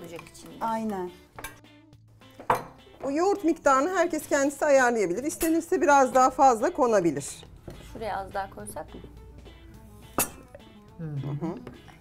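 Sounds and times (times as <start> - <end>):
soft background music: 0.0 - 12.0
metal spoon clinking on cookware: 5.3 - 5.7, 10.2 - 10.5.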